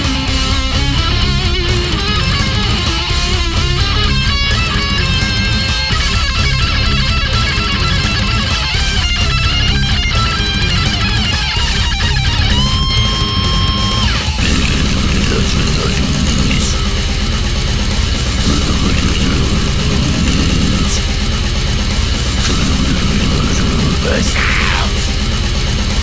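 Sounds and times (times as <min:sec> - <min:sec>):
distorted guitar lead: 0:00.0 - 0:26.0
fast drums: 0:00.0 - 0:26.0
heavy rhythm guitars: 0:00.0 - 0:26.0.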